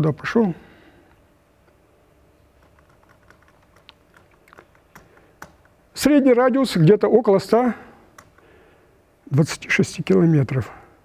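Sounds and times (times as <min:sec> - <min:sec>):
laptop keys clicking: 0:02.6 - 0:05.8, 0:08.1 - 0:08.5.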